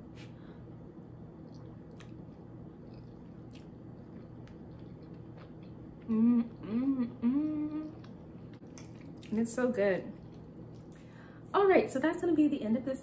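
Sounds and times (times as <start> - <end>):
steady low hum: 0.0 - 13.0
person chewing food: 1.4 - 9.4, 10.1 - 11.0.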